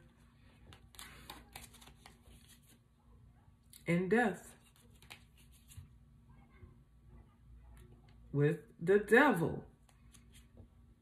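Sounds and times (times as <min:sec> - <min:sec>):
cards rustling and clicking: 0:00.5 - 0:02.8, 0:04.6 - 0:05.9, 0:09.8 - 0:10.6.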